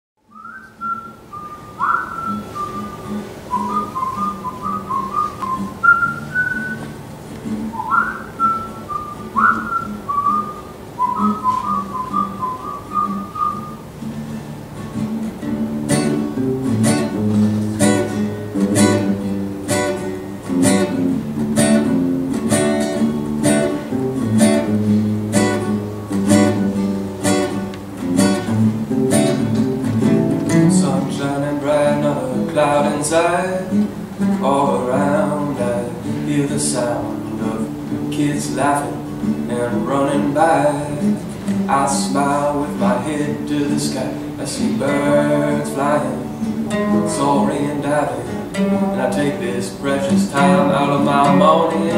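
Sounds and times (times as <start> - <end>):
acoustic guitars strumming: 0.3 - 51.9
whistled bird-like phrases: 0.4 - 6.8, 7.8 - 13.8.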